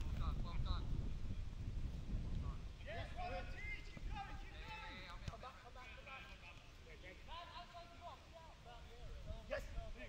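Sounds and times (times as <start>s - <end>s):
wind on microphone: 0.0s - 5.1s.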